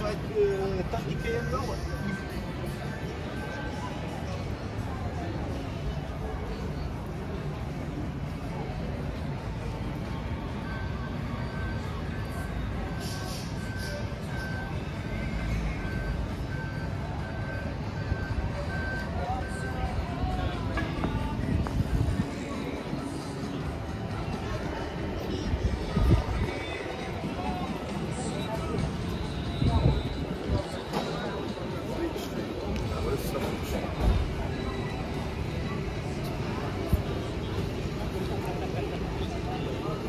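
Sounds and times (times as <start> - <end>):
indistinct chatter: 0.0 - 40.0
passers-by talking: 0.0 - 40.0
music playing: 10.3 - 40.0.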